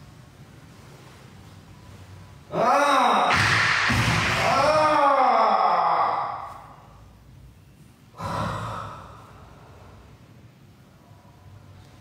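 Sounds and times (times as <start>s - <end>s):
breathy exhale: 8.2s - 10.2s.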